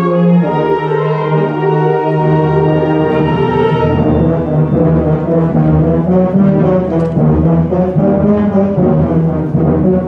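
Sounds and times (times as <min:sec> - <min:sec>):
concert band with low brass: 0:00.0 - 0:10.0.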